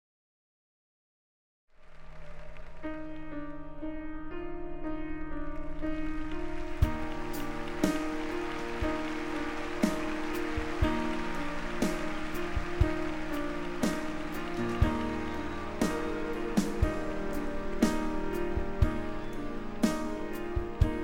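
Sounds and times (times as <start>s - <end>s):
grand piano chords: 2.2s - 21.0s.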